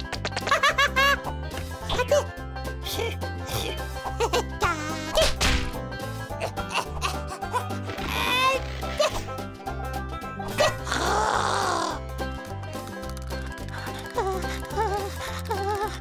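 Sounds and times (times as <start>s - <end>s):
cartoon music with bass line: 0.0s - 16.0s.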